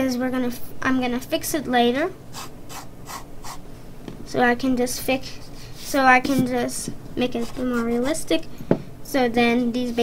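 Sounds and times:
pencil scratching on paper: 0:07.4 - 0:08.2.

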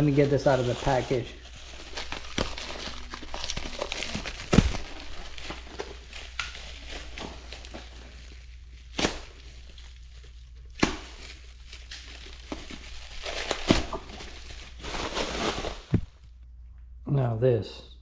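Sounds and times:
plastic wrap crinkling and tearing: 0:00.0 - 0:16.3.

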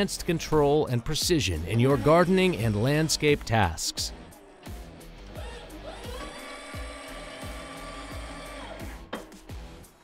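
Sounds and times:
background music with beat: 0:00.0 - 0:10.0
hydraulic pump whine: 0:05.1 - 0:09.3.

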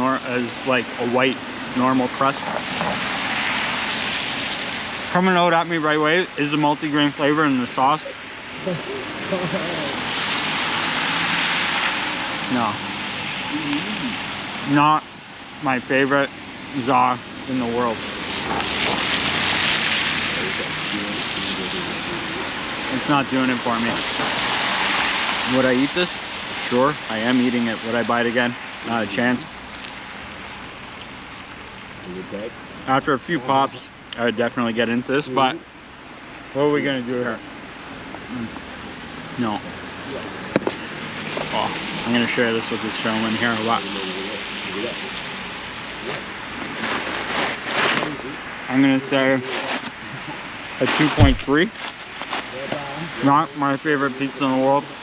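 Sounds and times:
car passing: 0:00.0 - 0:30.5, 0:36.1 - 0:47.6
tyres hissing on wet street: 0:00.0 - 0:55.0.

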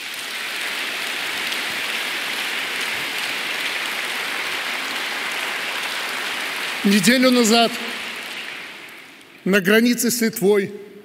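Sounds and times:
large audience applauding: 0:00.0 - 0:09.4.

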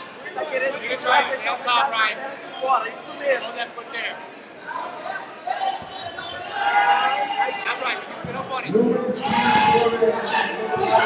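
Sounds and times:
voices shouting in echoing hall: 0:00.0 - 0:11.0.

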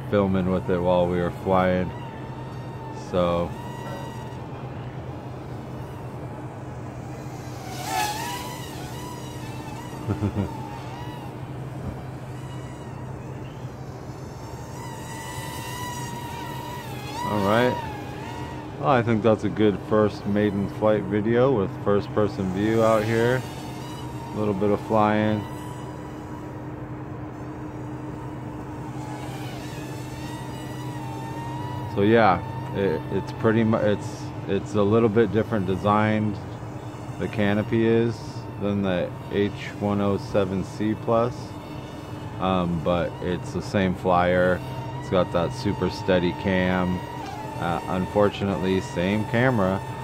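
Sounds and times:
mini quadcopter whine: 0:00.0 - 0:50.0.

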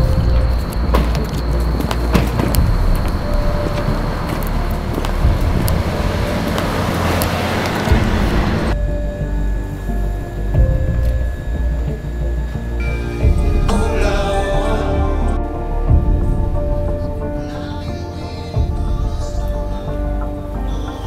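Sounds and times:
rushing noise: 0:00.0 - 0:20.6
film music with deep bass: 0:00.0 - 0:21.0.

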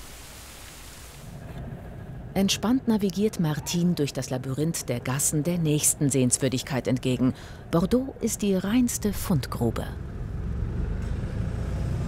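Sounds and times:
road noise: 0:01.3 - 0:12.0
car engine low rumble: 0:09.1 - 0:12.0.

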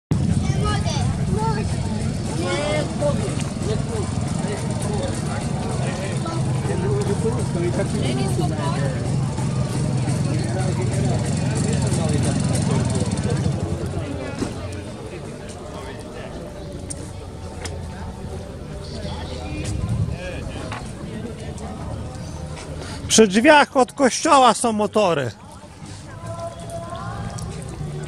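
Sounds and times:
vehicle engine idling: 0:00.1 - 0:23.2, 0:25.3 - 0:28.0
crowd chatter: 0:00.1 - 0:28.0.

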